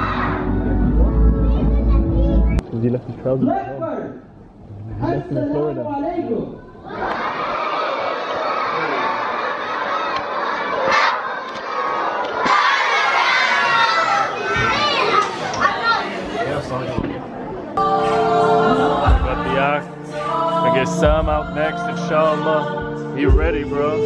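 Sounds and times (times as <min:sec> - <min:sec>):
audience cheering and shouting: 0:00.0 - 0:00.6, 0:06.8 - 0:16.1.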